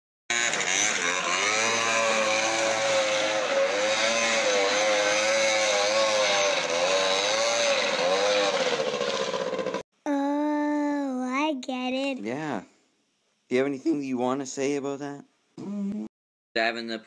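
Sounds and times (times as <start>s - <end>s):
small engine revving: 0.3s - 9.8s.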